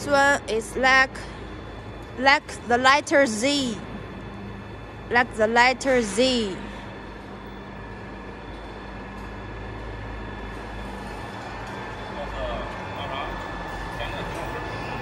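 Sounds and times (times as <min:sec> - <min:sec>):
factory machinery hum: 0:00.0 - 0:15.0.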